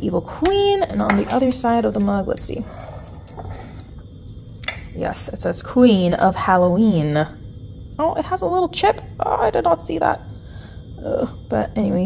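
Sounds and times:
ceramic mug being handled: 2.0 - 3.8.

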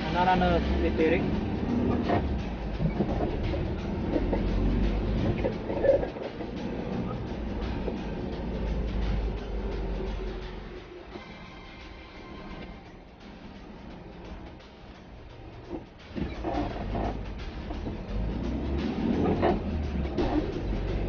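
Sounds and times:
car engine and road rumble: 0.0 - 21.0.

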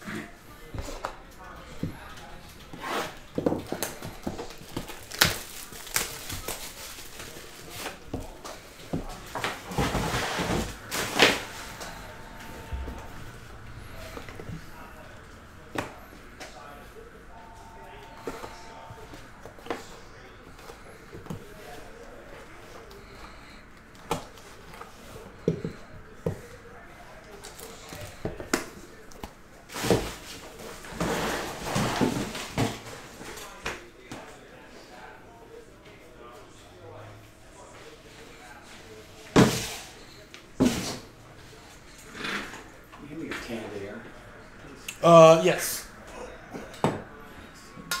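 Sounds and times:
plastic wrap crinkling and tearing: 3.8 - 8.1.

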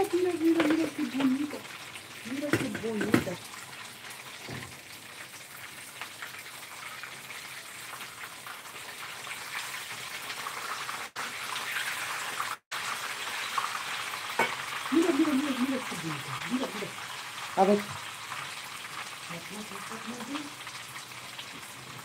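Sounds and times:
food sizzling in a frying pan: 0.0 - 22.0.

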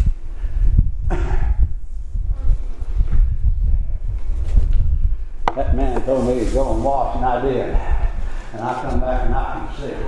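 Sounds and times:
low rumbling and thumping: 0.0 - 10.0
man preaching: 5.5 - 10.0.

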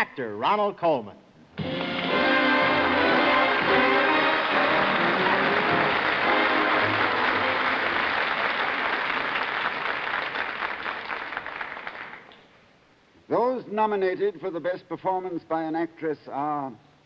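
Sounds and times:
live band music: 1.6 - 8.1
audience applauding: 1.6 - 12.4.

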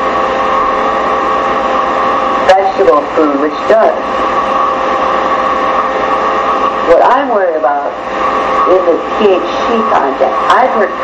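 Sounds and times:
steady hiss with hum: 0.0 - 11.0.

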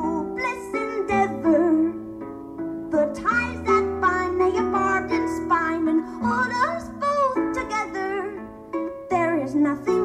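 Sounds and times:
woman singing: 0.0 - 2.1, 2.9 - 10.0.

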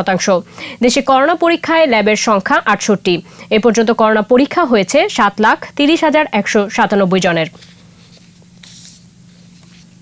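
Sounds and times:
faint low hum: 0.0 - 10.0
soft hiss: 7.5 - 10.0.

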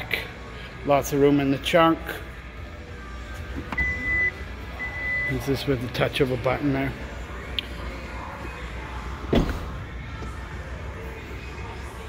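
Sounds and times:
high beeps: 3.8 - 5.5.

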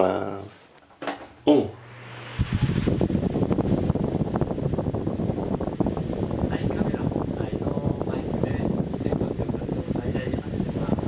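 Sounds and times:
fan wind buffeting microphone: 0.0 - 11.0.

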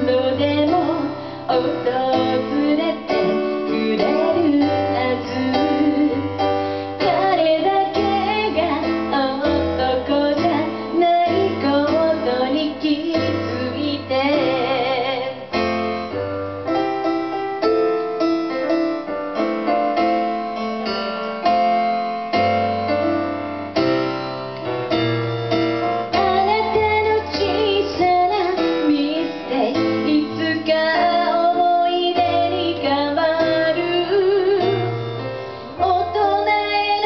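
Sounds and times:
woman singing: 0.0 - 15.6, 26.1 - 37.0
electronic keyboard piano chords: 0.0 - 37.0.

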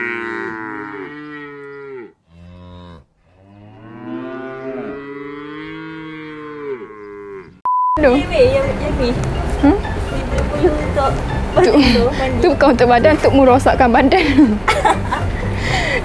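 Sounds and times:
cow mooing: 0.0 - 7.7
electronic beep: 7.7 - 8.0.

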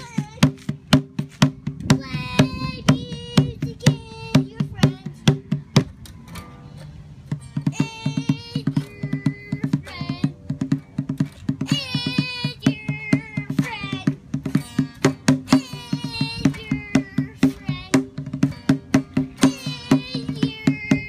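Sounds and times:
child singing wordlessly: 0.0 - 0.6, 1.7 - 5.6, 7.6 - 10.7, 11.5 - 21.0
acoustic guitar strummed hard: 0.0 - 21.0.

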